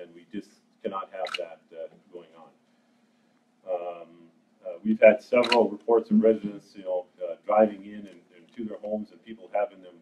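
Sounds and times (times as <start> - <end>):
man speaking into a microphone: 0.0 - 2.5, 3.7 - 10.0.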